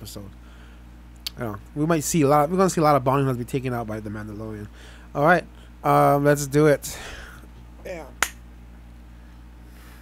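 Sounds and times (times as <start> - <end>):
low room hum: 0.0 - 10.0
hand snap: 8.2 - 8.4.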